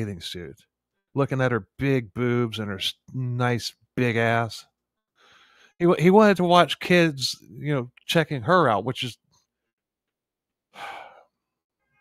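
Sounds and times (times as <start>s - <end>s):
man sighing: 10.7s - 11.4s.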